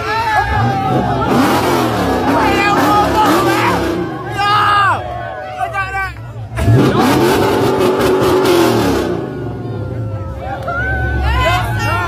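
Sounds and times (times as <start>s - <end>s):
crowd voices and shouting: 0.0s - 12.0s
car engine revving: 0.4s - 5.0s, 6.2s - 11.9s.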